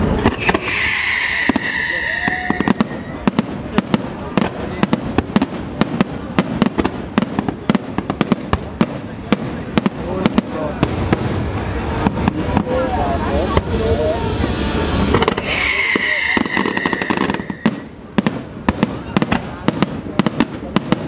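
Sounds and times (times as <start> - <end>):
firework shells bursting: 0.0 - 12.9, 14.4 - 21.0
steady rumble: 2.9 - 16.2.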